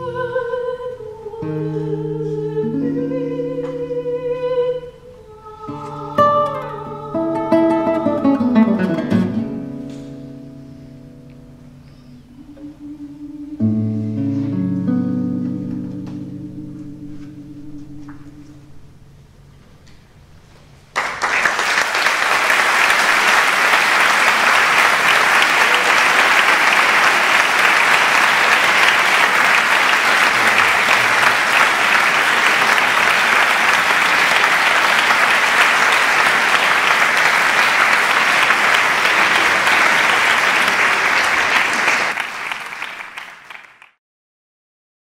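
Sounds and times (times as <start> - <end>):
audience applauding: 20.9 - 44.0.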